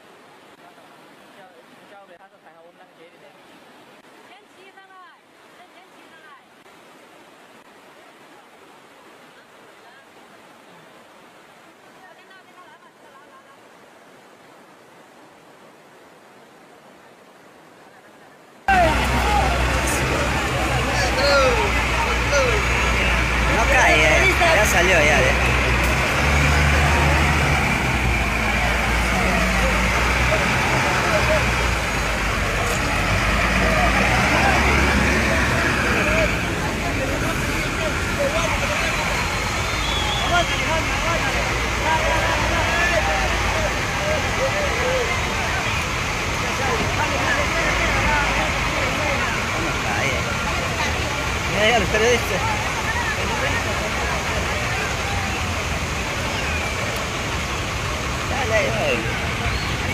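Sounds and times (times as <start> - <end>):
faint rushing noise: 3.0 - 59.9
people shouting: 18.7 - 25.4, 37.2 - 45.6
heavy diesel engines running: 18.7 - 59.9.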